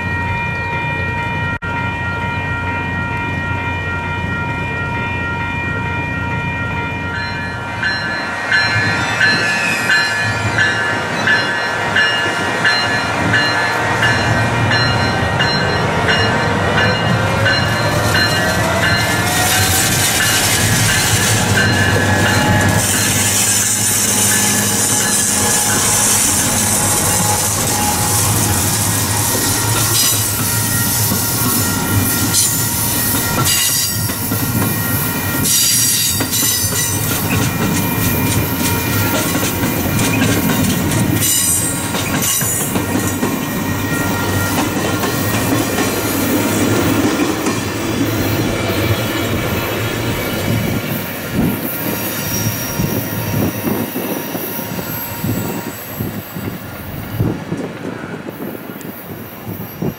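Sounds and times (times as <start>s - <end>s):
train passing: 0.0s - 59.9s
wheels on rails: 7.3s - 59.9s
wheels clicking over rail joints: 35.4s - 47.7s.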